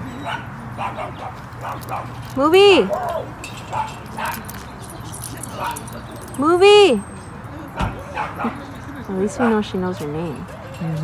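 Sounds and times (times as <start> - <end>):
distant voices: 0.0 - 11.0
dogs barking and yipping: 0.0 - 11.0.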